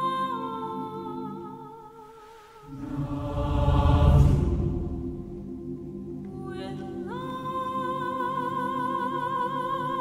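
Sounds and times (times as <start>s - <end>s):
soprano singing with vibrato: 0.0s - 4.3s, 6.3s - 10.0s
choir singing: 2.3s - 9.9s
low drums: 2.7s - 5.9s.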